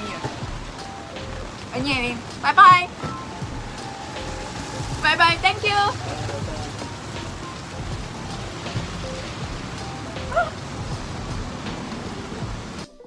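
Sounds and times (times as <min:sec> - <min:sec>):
steady rain: 0:00.0 - 0:13.0.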